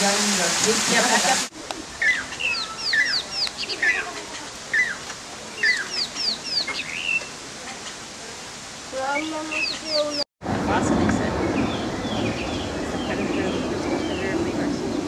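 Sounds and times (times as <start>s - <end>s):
steady background hiss: 0.0s - 10.2s
birds chirping: 0.7s - 10.3s, 11.2s - 15.0s.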